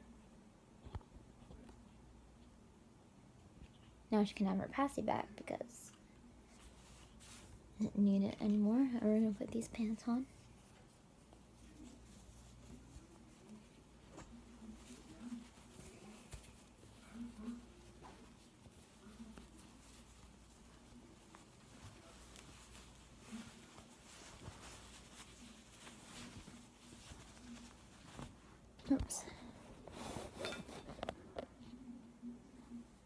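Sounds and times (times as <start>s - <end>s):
fabric rustling: 5.9s - 31.8s.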